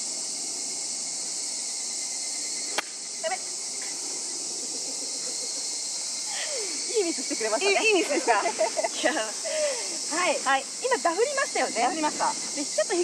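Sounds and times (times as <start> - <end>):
insects buzzing: 0.0 - 13.0.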